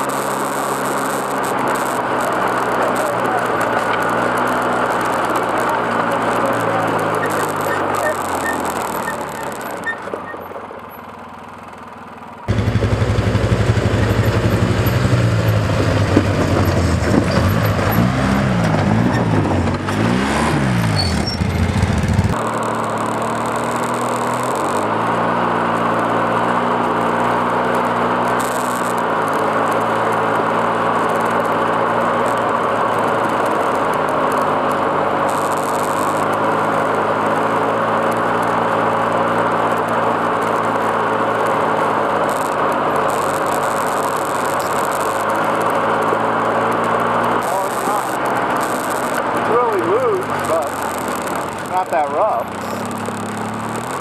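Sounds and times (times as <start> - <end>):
quad engine revving: 0.0 - 10.6, 12.5 - 54.0
gravel crunching: 0.0 - 54.0.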